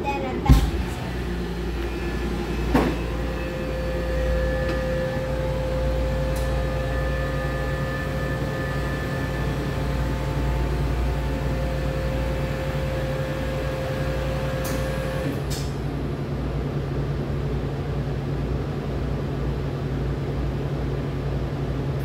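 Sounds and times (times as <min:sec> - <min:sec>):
vacuum pump humming: 0:00.4 - 0:15.4.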